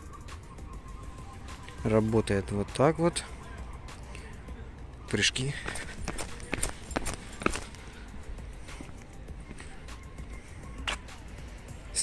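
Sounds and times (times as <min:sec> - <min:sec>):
outdoor background noise: 0:00.0 - 0:12.0
footsteps on pavement: 0:05.1 - 0:11.3.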